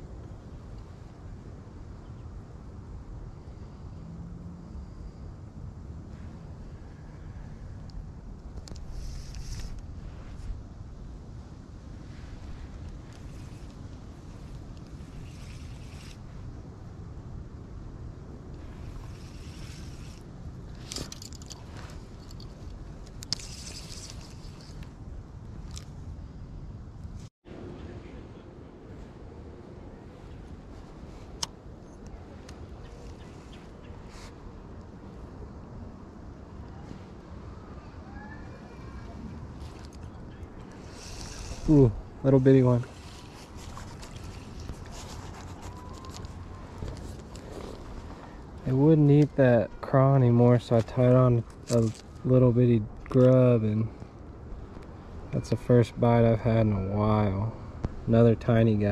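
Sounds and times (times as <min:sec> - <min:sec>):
wind rumbling on microphone: 0:00.0 - 0:58.9
fishing reel clicks and rustles: 0:08.6 - 0:09.8, 0:12.8 - 0:16.2, 0:18.8 - 0:24.9, 0:39.7 - 0:41.9.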